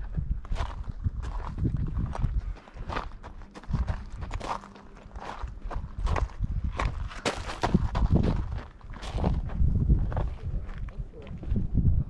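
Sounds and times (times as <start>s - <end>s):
footsteps crunching on gravel: 0.0s - 11.6s.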